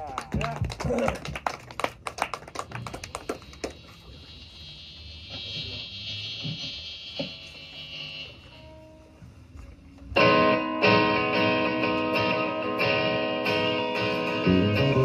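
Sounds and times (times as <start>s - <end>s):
amplifier hiss: 3.6s - 9.4s
electric guitar notes: 10.0s - 15.0s.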